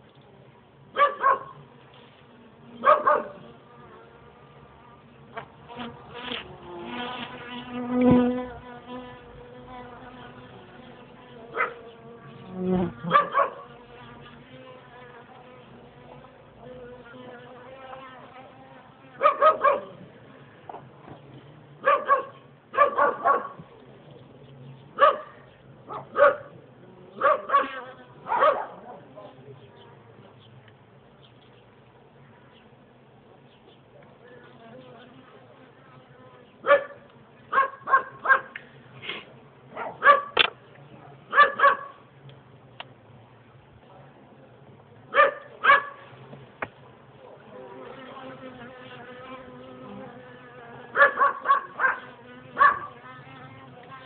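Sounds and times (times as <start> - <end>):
dog barking: 1.0 - 1.6, 2.8 - 3.4, 11.5 - 11.8, 13.1 - 13.7, 19.2 - 20.0, 21.8 - 23.6, 25.0 - 26.5, 27.2 - 29.1, 36.6 - 38.6, 39.7 - 40.4, 41.0 - 42.0, 45.1 - 46.1, 50.9 - 53.0
honeybees buzzing: 1.6 - 21.4, 46.0 - 54.0.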